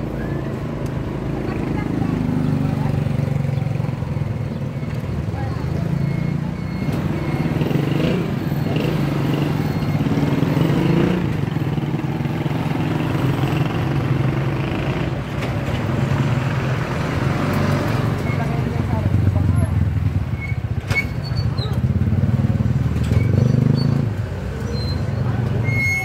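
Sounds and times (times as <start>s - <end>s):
car engines passing: 0.0s - 26.0s
small truck approaching: 0.0s - 26.0s
motorcycle passing: 1.1s - 20.7s, 21.4s - 25.6s.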